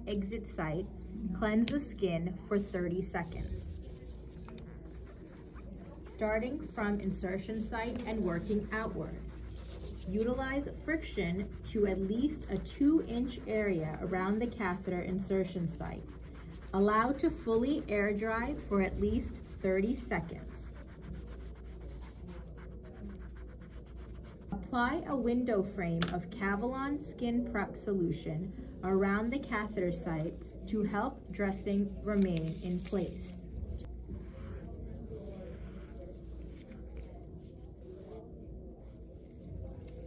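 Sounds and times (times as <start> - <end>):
foam swab rubbing: 4.8 - 24.6.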